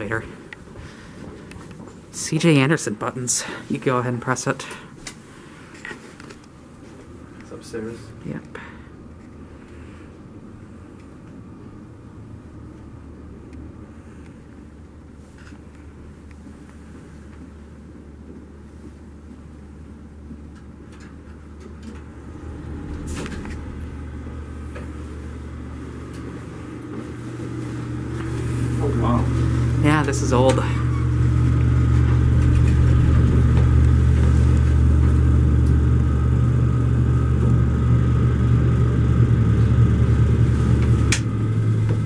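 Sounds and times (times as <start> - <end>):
elevator hum and rumble: 0.0 - 42.0
elevator doors opening: 20.9 - 36.2.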